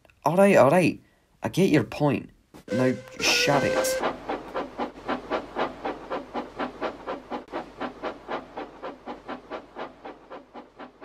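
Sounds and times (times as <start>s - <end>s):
steam locomotive chuffing: 2.7s - 11.0s.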